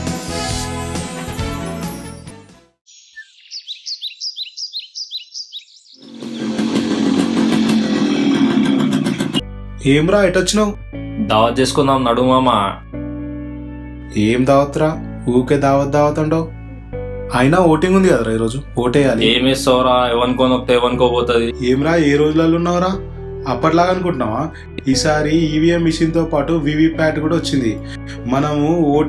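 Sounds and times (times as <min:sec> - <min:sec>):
motorcycle engine running: 0:06.0 - 0:09.4
background music with low drone: 0:06.0 - 0:29.0.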